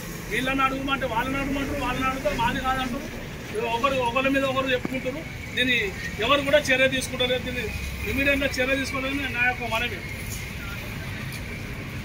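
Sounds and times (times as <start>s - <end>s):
low outdoor rumble: 0.0s - 12.0s.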